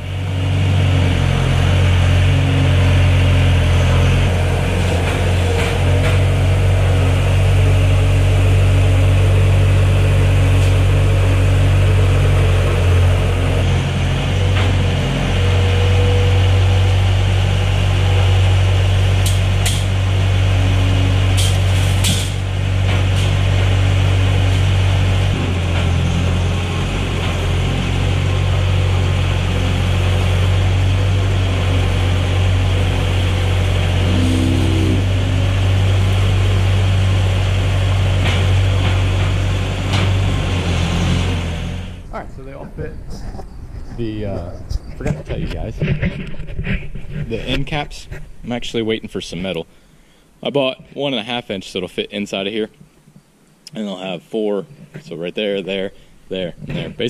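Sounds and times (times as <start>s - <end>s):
loader engine running: 0.0s - 50.3s.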